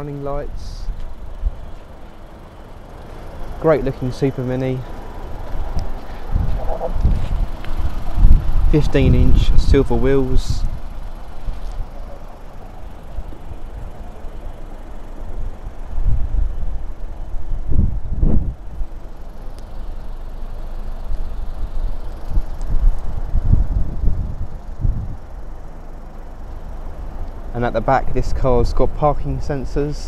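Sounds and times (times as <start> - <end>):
wind buffeting microphone: 5.3 - 12.0, 15.5 - 19.0, 21.6 - 25.4.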